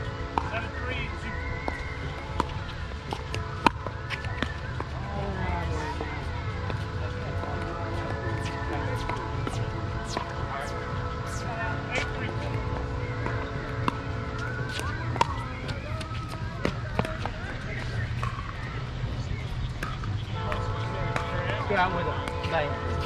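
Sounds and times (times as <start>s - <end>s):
background music: 0.0s - 23.0s.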